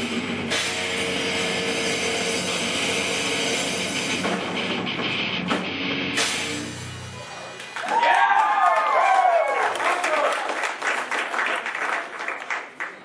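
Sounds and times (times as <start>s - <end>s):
distorted electric guitars: 0.0s - 7.8s
drum kit: 0.0s - 8.3s
cymbal crashes: 6.2s - 7.6s.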